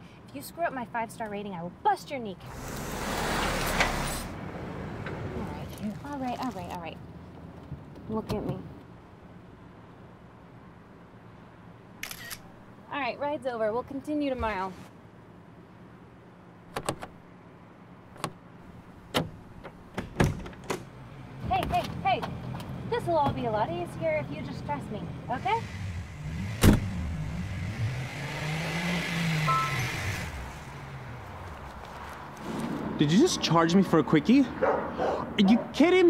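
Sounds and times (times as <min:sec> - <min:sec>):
car driving off: 0:02.5 - 0:06.2, 0:24.0 - 0:33.4
phone camera shutter click: 0:12.0 - 0:12.5
short electronic beep: 0:29.5 - 0:30.0.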